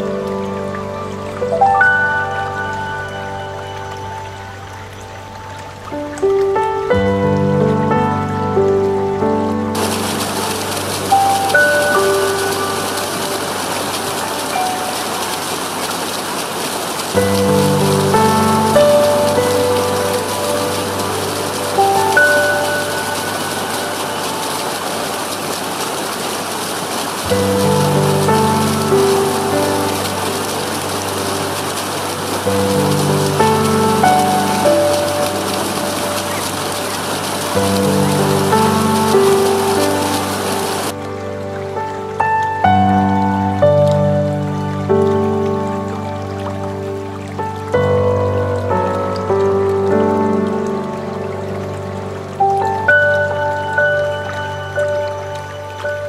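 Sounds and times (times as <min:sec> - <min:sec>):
flowing water rushing: 0:00.0 - 0:56.0
gentle relaxation music: 0:00.0 - 0:56.0.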